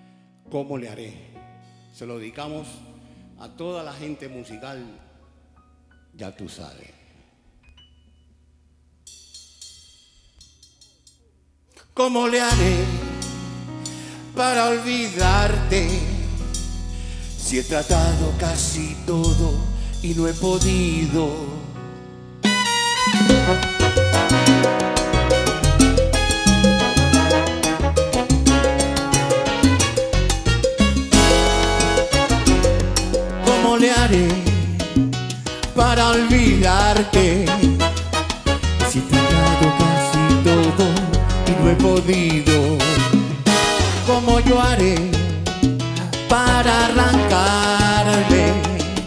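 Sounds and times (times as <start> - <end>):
metallic percussion strikes: 9.0 - 11.3, 23.1 - 33.5
salsa band playing: 12.5 - 13.8, 22.4 - 49.0.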